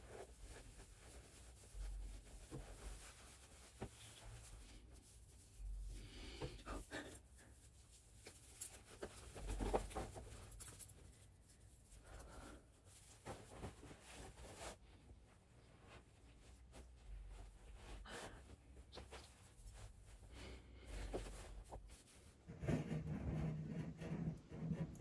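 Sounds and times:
handling and shuffling noises: 0:00.0 - 0:25.0
sweater rustling: 0:07.4 - 0:22.4.

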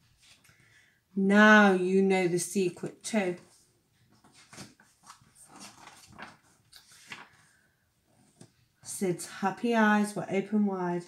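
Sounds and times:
book pages rustling: 0:00.0 - 0:00.8, 0:03.3 - 0:08.9.

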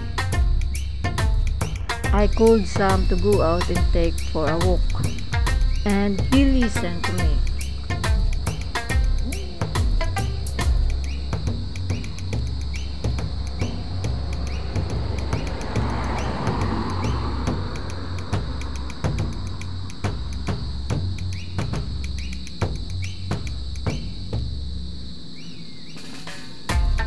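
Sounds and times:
music with steady beat and bass: 0:00.0 - 0:24.9, 0:26.0 - 0:27.0.

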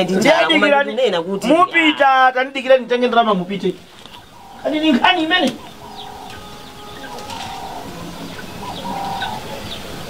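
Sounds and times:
low background hiss: 0:00.0 - 0:10.0
small birds chirping: 0:00.0 - 0:10.0
dove cooing: 0:03.8 - 0:10.0.

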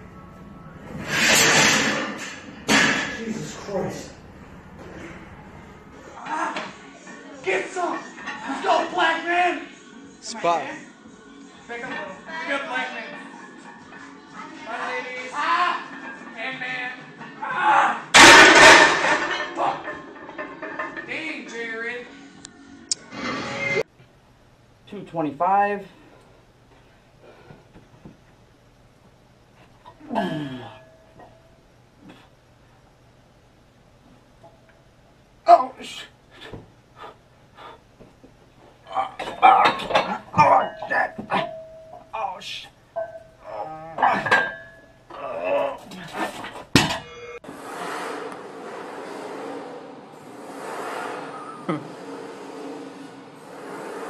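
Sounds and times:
barbell crashing onto metal bars: 0:01.1 - 0:03.5, 0:18.2 - 0:21.1, 0:46.6 - 0:47.2
weight plates clanging on floor: 0:18.2 - 0:21.1, 0:39.1 - 0:42.1, 0:43.0 - 0:43.4, 0:44.0 - 0:44.9.

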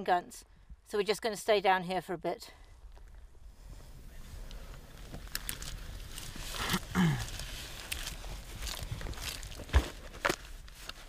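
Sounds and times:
footsteps on dry grass: 0:02.8 - 0:11.0.

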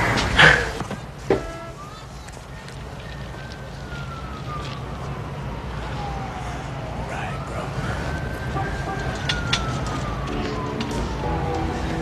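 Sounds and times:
street background noise: 0:00.0 - 0:12.0
siren: 0:01.4 - 0:12.0.

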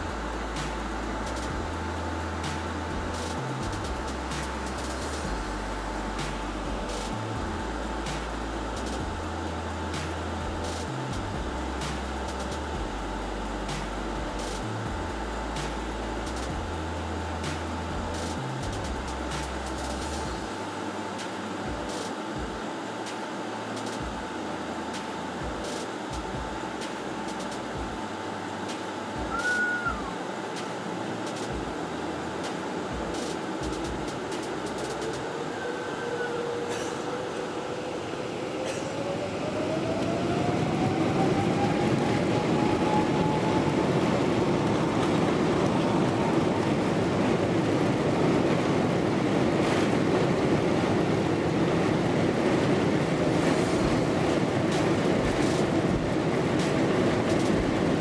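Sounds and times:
low rumble from wheels: 0:00.0 - 0:22.7, 0:39.2 - 0:58.0
engines and air conditioning hum: 0:00.0 - 0:58.0
brief high squeak: 0:29.3 - 0:30.1.

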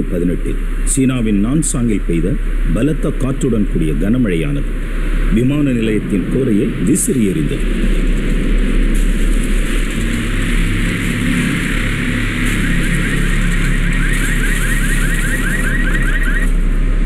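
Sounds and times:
heavy rain: 0:00.0 - 0:17.0
storm wind: 0:00.0 - 0:17.0
vehicle engines humming: 0:00.0 - 0:17.0
rapid high chirping: 0:11.8 - 0:16.5.

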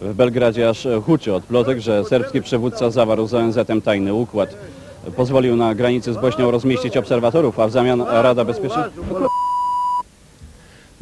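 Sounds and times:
faint background noise: 0:00.0 - 0:11.0
electronic beep: 0:09.2 - 0:10.0.

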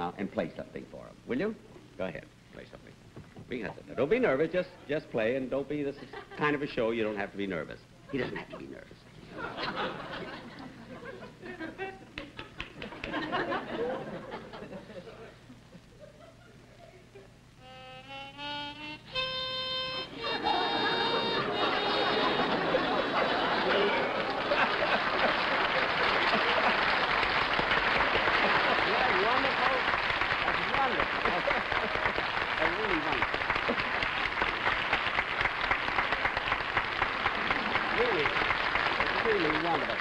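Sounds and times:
audience laughter: 0:08.2 - 0:17.3, 0:20.1 - 0:29.6, 0:30.5 - 0:32.6, 0:33.6 - 0:34.1, 0:37.2 - 0:38.2
harmonica playing: 0:17.6 - 0:23.0
audience applause: 0:20.4 - 0:40.0.

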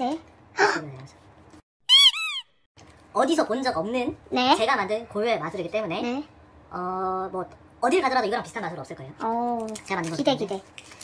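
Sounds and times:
high-pitched squeak: 0:01.8 - 0:02.6.

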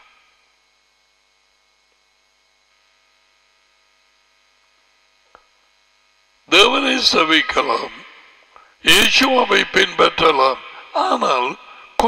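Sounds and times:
faint electrical hum: 0:00.0 - 0:12.0
small click: 0:05.2 - 0:05.6
man speaking: 0:06.5 - 0:12.0.

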